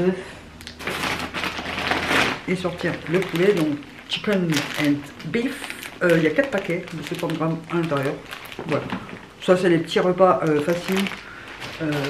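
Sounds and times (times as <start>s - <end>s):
packaging rustling and crinkling: 0.7s - 12.0s.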